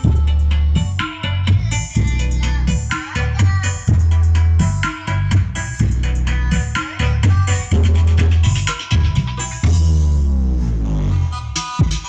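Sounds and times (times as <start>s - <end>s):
deep bass tone sliding down: 3.8s - 11.6s.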